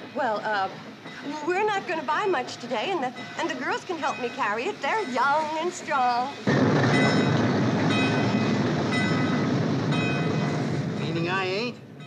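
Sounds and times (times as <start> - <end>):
steam locomotive rumble: 0.0 - 12.0
locomotive bell ringing: 0.3 - 10.7.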